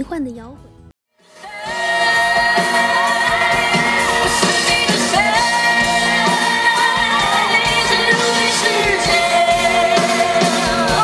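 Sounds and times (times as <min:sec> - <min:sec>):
rhythmic band playing: 0:01.2 - 0:11.0
man singing: 0:01.8 - 0:11.0.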